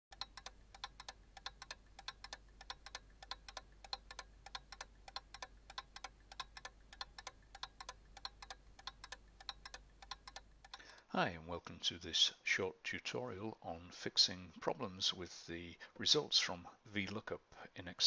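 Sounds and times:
fast clock ticking: 0:00.1 - 0:11.0.

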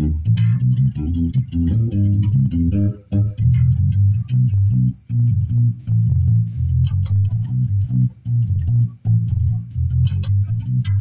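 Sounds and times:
electric bass guitar plucked notes: 0:00.0 - 0:11.0.

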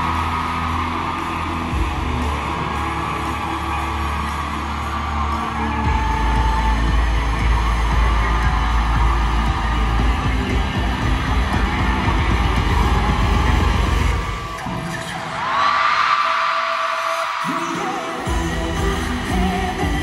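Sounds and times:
loud concert music with pounding bass: 0:00.0 - 0:15.7, 0:16.7 - 0:20.0.

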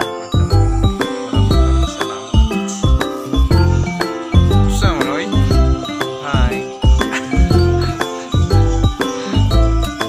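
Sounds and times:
music with heavy bass beat: 0:00.4 - 0:10.0.

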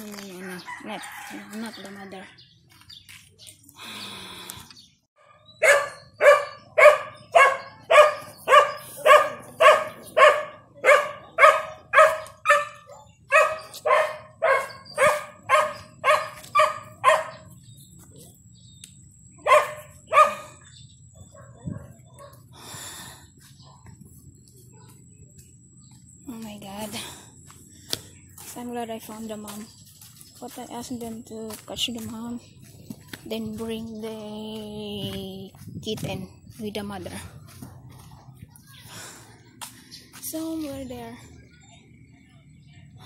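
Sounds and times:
dog barking: 0:05.2 - 0:17.5, 0:19.4 - 0:22.4.

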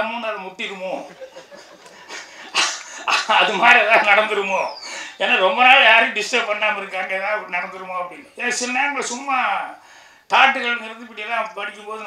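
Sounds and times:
man laughing: 0:01.0 - 0:05.4.

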